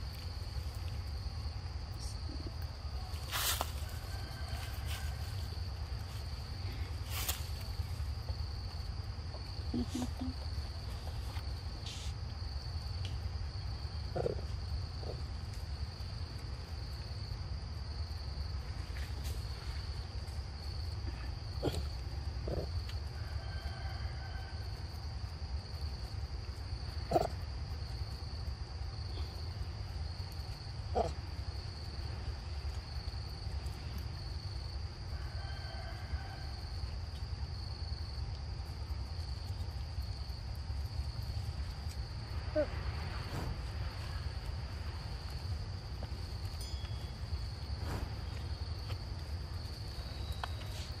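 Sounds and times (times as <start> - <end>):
insects trilling: 0.0 - 51.0
macaque grunts: 21.6 - 22.7
low rumble: 42.3 - 50.5.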